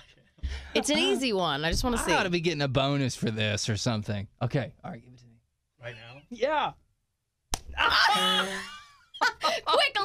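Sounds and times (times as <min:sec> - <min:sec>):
open-hand slap to face: 0:07.5 - 0:07.7.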